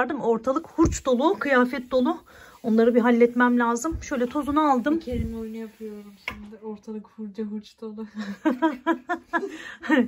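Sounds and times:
woman laughing: 8.2s - 10.0s.

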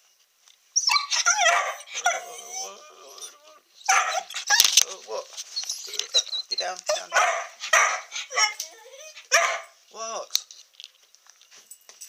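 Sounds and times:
dog whining: 0.8s - 9.7s.

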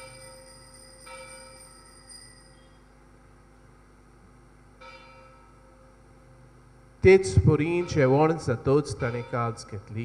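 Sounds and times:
altar bell ringing: 0.0s - 2.9s, 7.7s - 10.0s.

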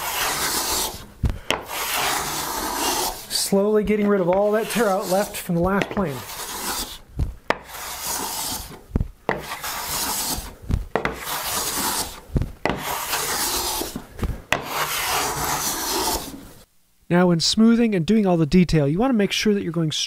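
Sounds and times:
hand plane scraping wood: 0.0s - 16.5s
plane knocking on wood: 7.5s - 8.6s, 9.3s - 12.0s, 12.6s - 16.2s.

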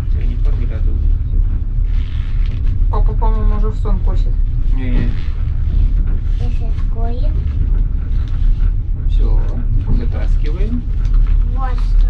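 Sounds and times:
train rumble: 0.0s - 12.0s.

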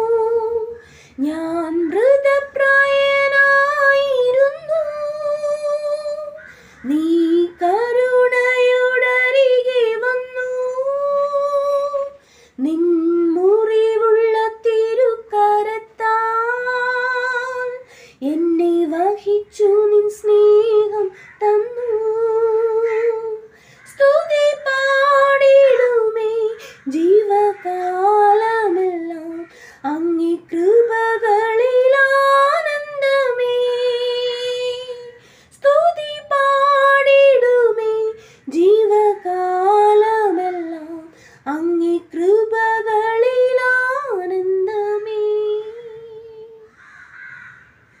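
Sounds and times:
woman singing unaccompanied: 0.0s - 46.8s.

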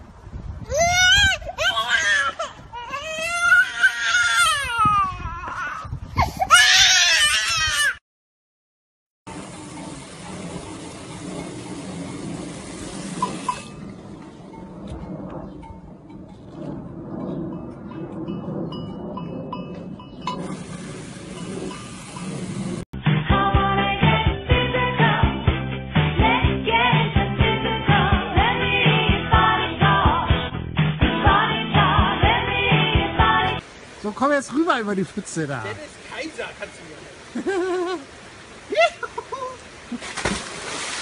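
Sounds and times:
toddler crying and screaming: 0.6s - 8.0s.

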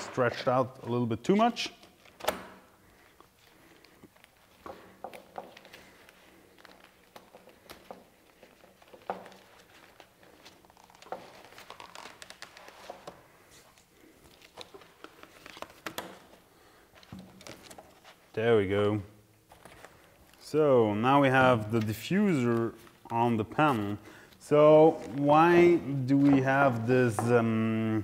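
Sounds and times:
faint rustling of fabric: 1.9s - 28.0s.

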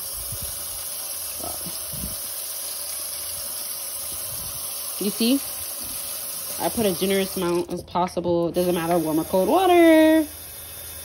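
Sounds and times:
faucet running into steel sink: 0.0s - 7.8s, 8.4s - 11.0s.

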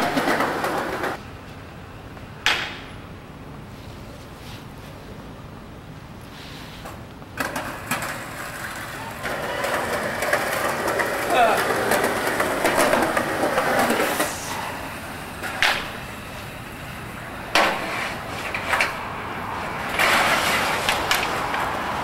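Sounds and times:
sharp knocks: 2.4s - 2.9s, 15.6s - 16.0s.

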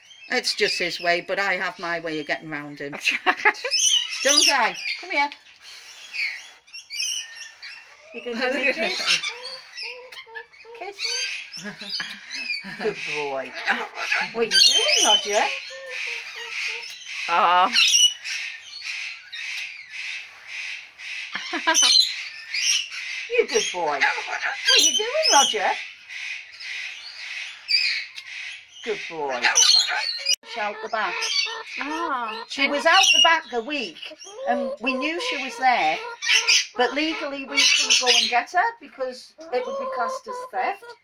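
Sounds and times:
cockatoo harsh raspy call: 3.7s - 41.0s
corella chattering: 7.6s - 18.0s, 23.3s - 25.8s, 28.8s - 41.0s
person speaking: 30.4s - 36.1s, 36.8s - 41.0s.

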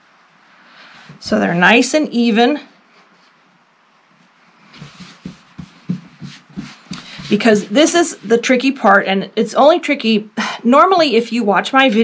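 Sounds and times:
fabric rustling: 2.8s - 8.6s
light hand taps on fabric: 4.8s - 7.4s.

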